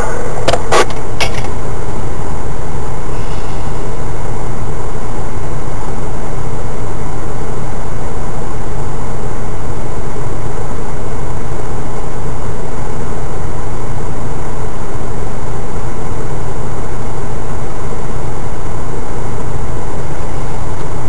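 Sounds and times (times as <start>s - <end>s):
tyres on rough track: 0.0s - 21.0s
vehicle engine running: 0.0s - 21.0s.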